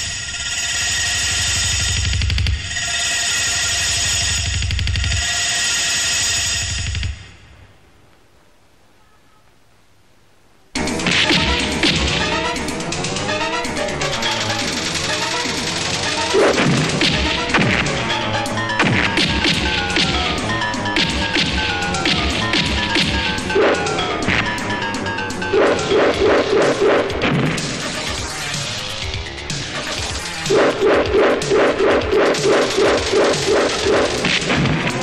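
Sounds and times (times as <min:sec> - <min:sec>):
loud background film score: 0:00.0 - 0:07.8, 0:10.8 - 0:35.0
punch and hit sound effects: 0:11.0 - 0:12.3, 0:16.3 - 0:18.0, 0:18.8 - 0:24.8, 0:25.5 - 0:28.2, 0:30.3 - 0:35.0.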